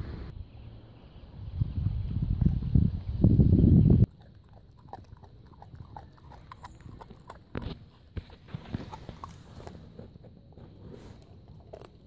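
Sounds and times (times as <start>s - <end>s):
wind rumble on microphone: 1.3s - 4.6s
dog gnawing bone: 4.1s - 12.0s.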